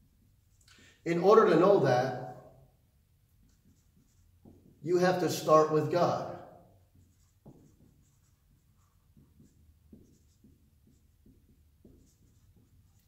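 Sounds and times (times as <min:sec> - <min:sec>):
marker squeaking on whiteboard: 0:03.4 - 0:04.8, 0:06.6 - 0:13.0.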